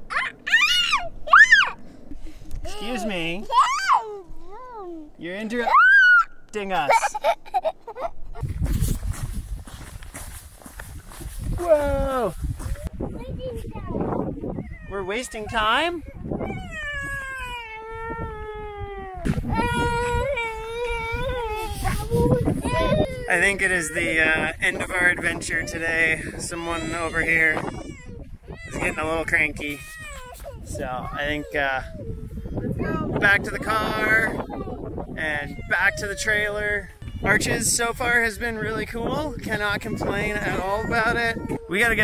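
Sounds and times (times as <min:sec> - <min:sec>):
toddler whining: 0:00.1 - 0:01.8, 0:02.6 - 0:06.3, 0:14.5 - 0:24.3, 0:25.5 - 0:37.4, 0:39.3 - 0:42.0
young child squealing: 0:00.1 - 0:01.8, 0:02.6 - 0:04.3, 0:05.6 - 0:06.4, 0:16.2 - 0:24.3, 0:25.7 - 0:33.0, 0:33.9 - 0:37.4, 0:40.0 - 0:42.0.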